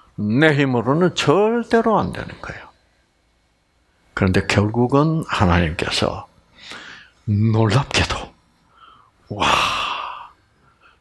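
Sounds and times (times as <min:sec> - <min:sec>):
man's breathy exclamation: 0:09.3 - 0:10.3.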